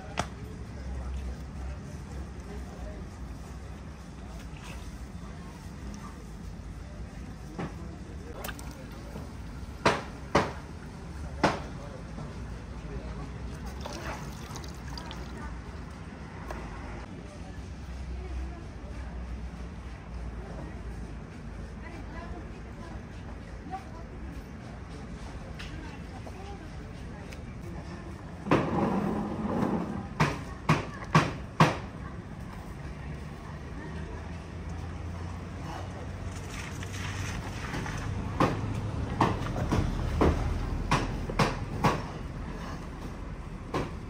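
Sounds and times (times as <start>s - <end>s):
wet squelches of meat: 8.3s - 9.5s, 13.4s - 16.0s
marinade dripping: 13.4s - 16.0s.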